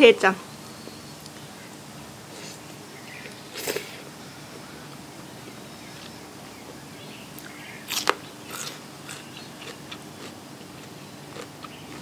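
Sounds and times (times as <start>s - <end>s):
crunchy bite of raw vegetable: 3.2s - 4.0s, 7.4s - 12.0s
chewing with crunches: 7.4s - 12.0s.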